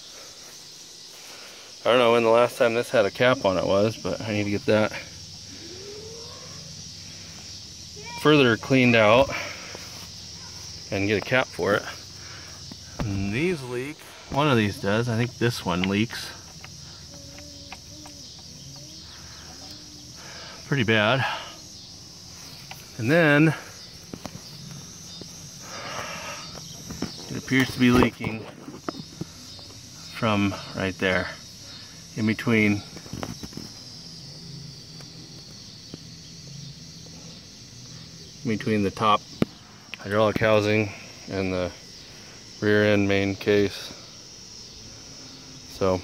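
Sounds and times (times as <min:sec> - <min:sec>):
crickets chirring: 0:00.0 - 0:46.0
faint steady hiss: 0:00.0 - 0:46.0.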